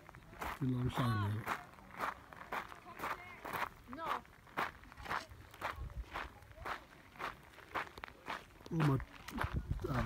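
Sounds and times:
footsteps on gravelly dirt: 0:00.0 - 0:10.0
person speaking: 0:08.7 - 0:10.0.

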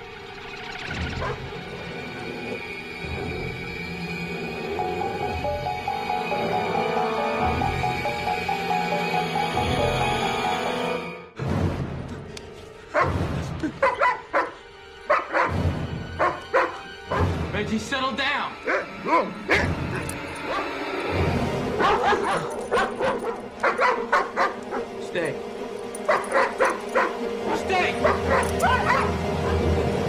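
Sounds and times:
background music: 0:00.0 - 0:30.0
large dog barking: 0:12.9 - 0:13.1, 0:13.8 - 0:15.6, 0:16.2 - 0:17.4, 0:18.6 - 0:20.8, 0:21.7 - 0:25.0, 0:26.0 - 0:27.3, 0:27.9 - 0:29.7.

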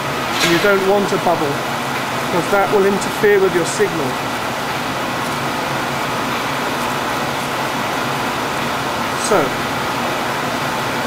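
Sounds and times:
ventilation rushing noise: 0:00.0 - 0:11.0.

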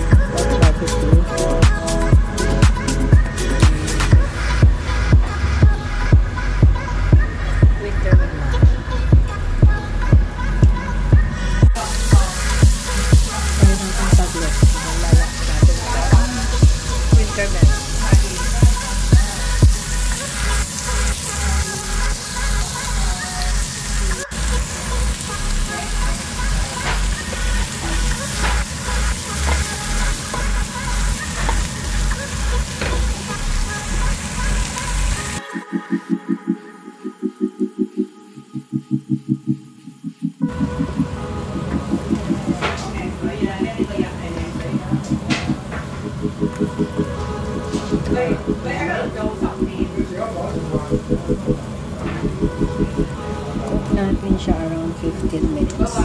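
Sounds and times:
background music with steady beat: 0:00.0 - 0:56.0.

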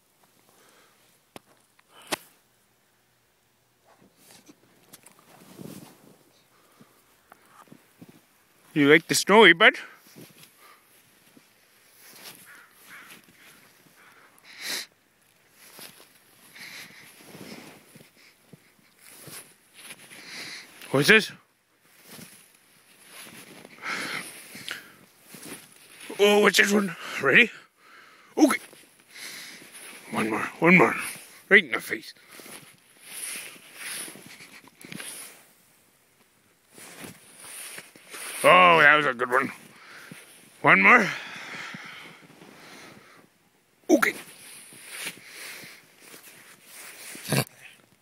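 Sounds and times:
snow crunching: 0:05.2 - 0:14.4, 0:15.2 - 0:21.1, 0:21.8 - 0:27.2, 0:28.4 - 0:35.6, 0:36.7 - 0:43.2, 0:43.9 - 0:47.4.

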